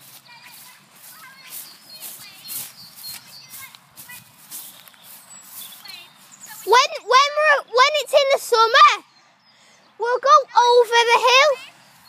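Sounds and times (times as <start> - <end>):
footsteps swishing through grass: 0.0 - 6.7
faint distant voices: 0.0 - 8.6.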